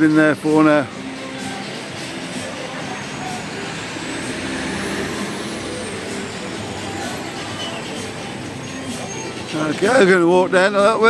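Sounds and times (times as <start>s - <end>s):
motor vehicle passing: 0.9s - 9.6s.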